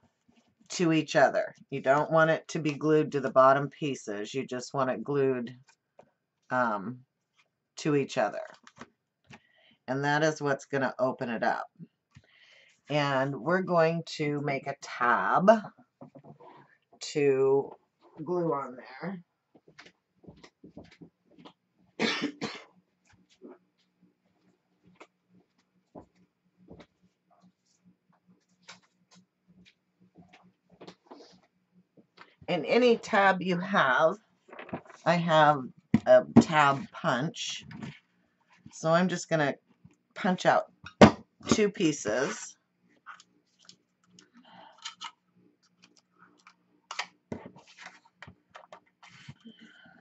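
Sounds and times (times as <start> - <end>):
woman coughing: 22.0 - 22.7
paper rustle: 34.4 - 35.1, 47.3 - 49.4.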